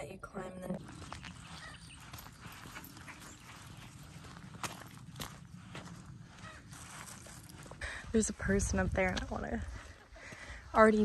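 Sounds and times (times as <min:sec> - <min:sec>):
footsteps on gravel trail: 0:00.7 - 0:11.0
low wind rumble: 0:02.4 - 0:11.0.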